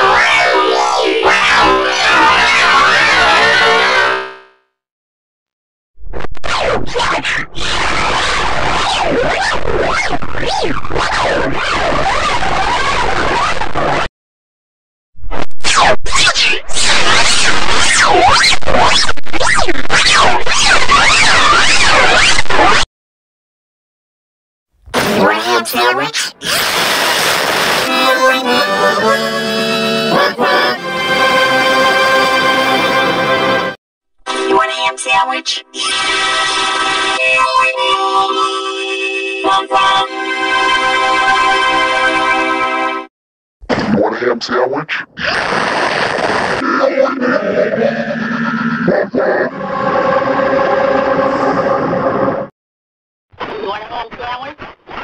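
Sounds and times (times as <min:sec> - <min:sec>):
distorted logo jingle: 0:24.9 - 0:33.7.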